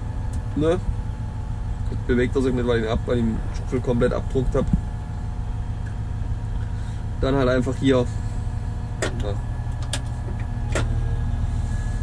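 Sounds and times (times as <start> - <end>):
diesel engine running: 0.0 - 12.0.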